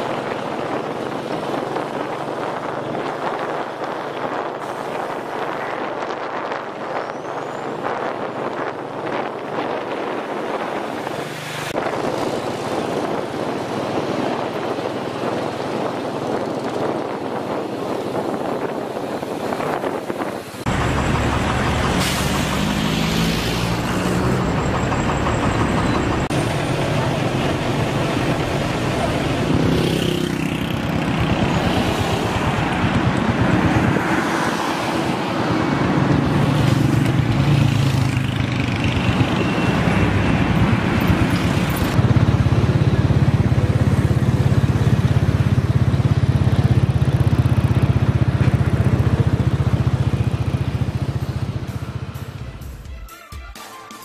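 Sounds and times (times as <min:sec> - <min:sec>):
heavy truck engines: 0:00.0 - 0:52.9
low engine drone: 0:20.6 - 0:29.6.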